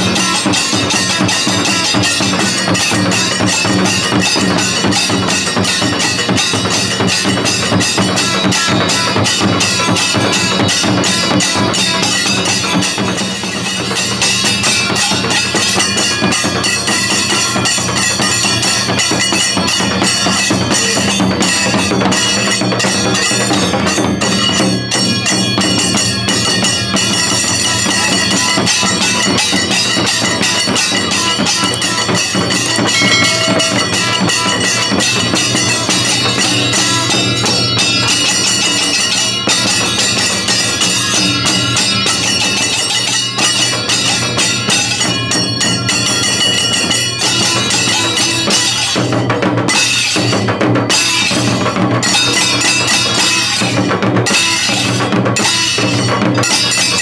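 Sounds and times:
fast drum beating: 0.0 - 57.0
hand cymbals clashing: 0.0 - 57.0.

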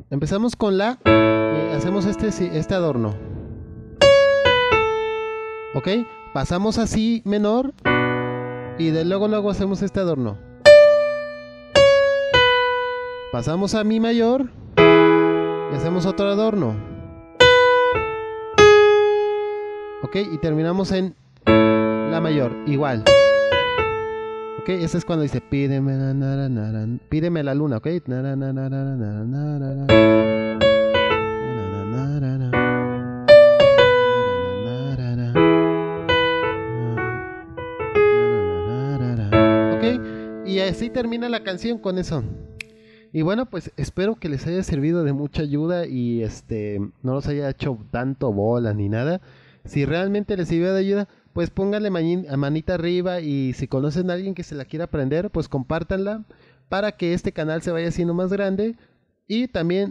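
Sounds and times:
descending single piano notes: 1.0 - 6.4, 7.8 - 13.8, 14.7 - 20.7, 21.5 - 25.5, 29.9 - 42.9
electronic keyboard piano chord: 1.0 - 6.4, 7.8 - 13.8, 14.8 - 20.8, 21.5 - 25.7, 29.9 - 42.6.

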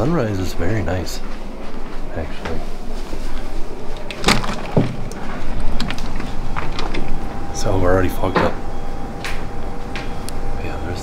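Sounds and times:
glass sliding door opening: 3.9 - 7.2.

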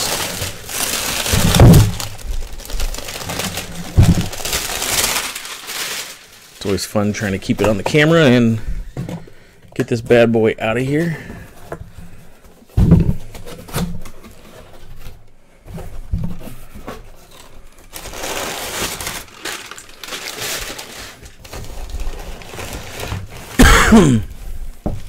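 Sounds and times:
packing paper rustling: 0.0 - 8.7, 13.2 - 25.0.

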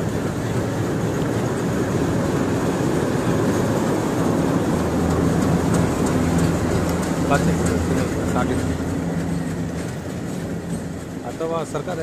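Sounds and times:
train wheels on rails: 0.0 - 12.0.

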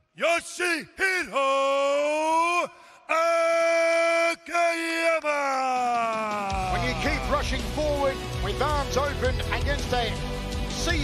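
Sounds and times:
man announcing in drawn-out vowels: 0.2 - 5.8.

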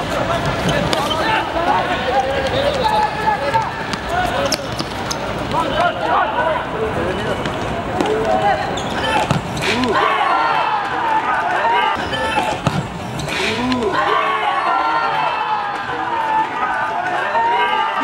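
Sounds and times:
players calling and shouting: 0.0 - 18.0
ball kicked and bouncing on concrete: 3.5 - 5.6, 9.1 - 9.6.

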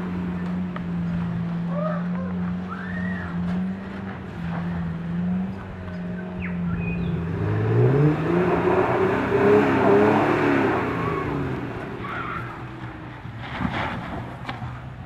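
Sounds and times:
engine revving under load: 0.0 - 15.0.

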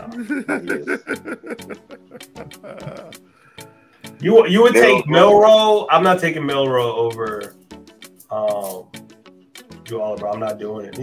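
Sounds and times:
man chuckling softly: 0.0 - 3.3
faint background music: 0.0 - 11.0.

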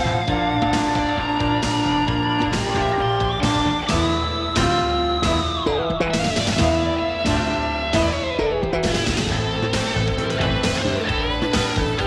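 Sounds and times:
rock music with guitar: 0.0 - 12.0.

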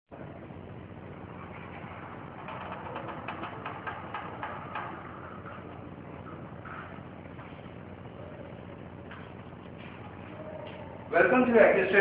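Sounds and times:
steady background noise: 0.1 - 12.0.

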